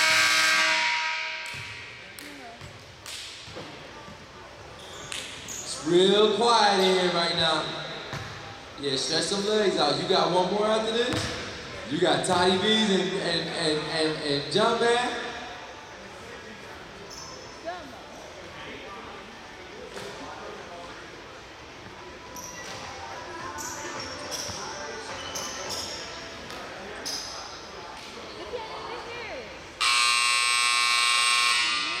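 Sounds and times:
scoreboard buzzer blast: 0:00.0 - 0:01.6, 0:29.8 - 0:32.0
faint voices murmuring: 0:01.9 - 0:29.8
basketball bouncing: 0:08.1 - 0:08.5, 0:11.1 - 0:11.6.

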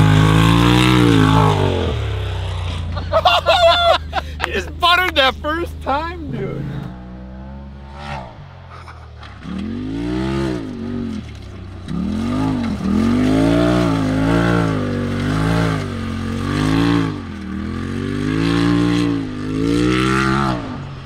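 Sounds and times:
off-road vehicle engine revving: 0:00.0 - 0:21.0.

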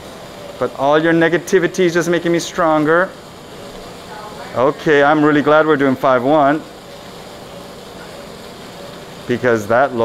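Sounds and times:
operating room background noise: 0:00.0 - 0:10.0.

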